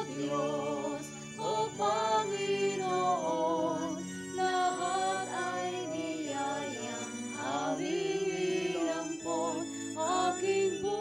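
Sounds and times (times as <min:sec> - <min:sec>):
hymn singing: 0:00.0 - 0:11.0
instrumental accompaniment: 0:00.0 - 0:11.0.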